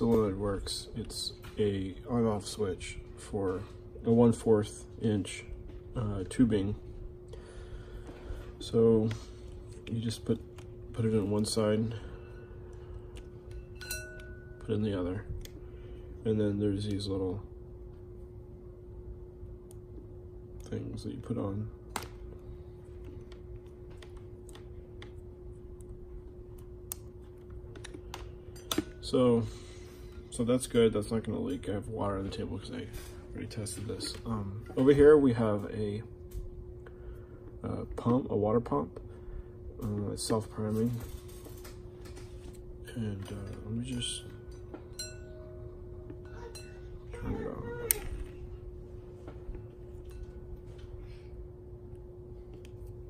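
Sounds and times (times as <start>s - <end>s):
faint steady hum: 0.0s - 53.0s
clicks and clinks of wires: 25.8s - 29.2s, 39.8s - 45.4s.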